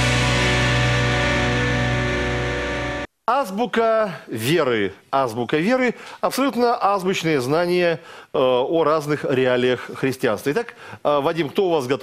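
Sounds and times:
loud music chord with bass: 0.0s - 3.1s.

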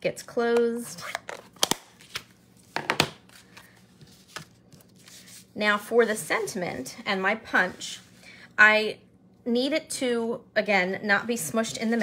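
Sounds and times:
paper rustling: 3.3s - 5.5s.

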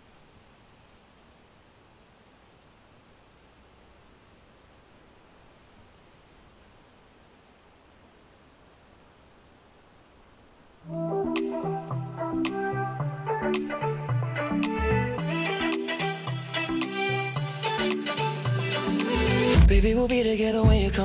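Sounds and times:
crickets chirping: 0.0s - 14.2s
low hiss of outdoor ambience: 0.0s - 21.0s.

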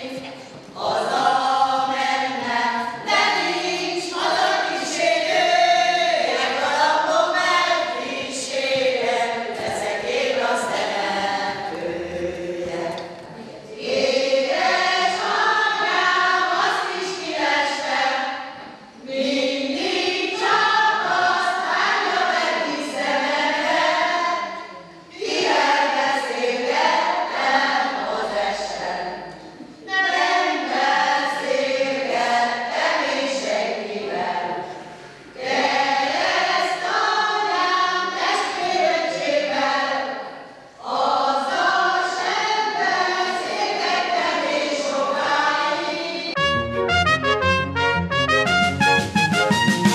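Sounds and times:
choir singing: 0.0s - 47.2s
instrumental station jingle: 46.4s - 49.9s.

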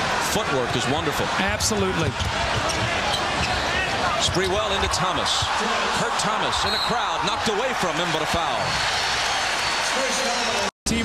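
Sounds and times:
crowd noise: 0.0s - 11.0s
basketball bouncing on court: 2.0s - 3.6s
sneakers squeaking: 2.1s - 4.7s.

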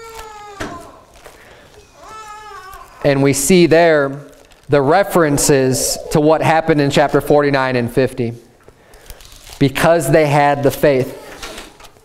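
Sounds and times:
pages rustling: 1.0s - 2.0s, 3.9s - 5.0s.

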